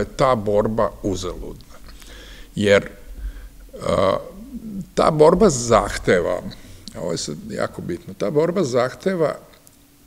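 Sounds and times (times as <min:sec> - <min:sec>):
man speaking: 0:00.0 - 0:09.5.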